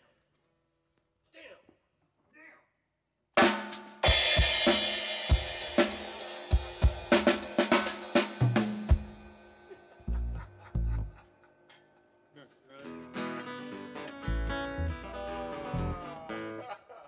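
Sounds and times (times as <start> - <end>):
drum kit playing: 3.4 - 11.1
cymbal crash: 3.6 - 10.0.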